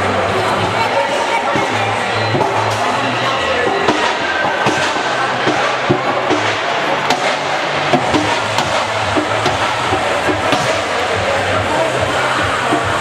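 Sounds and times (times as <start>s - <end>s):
background music: 0.0s - 13.0s
crowd noise: 0.0s - 13.0s
ball bouncing on court: 3.9s - 11.2s.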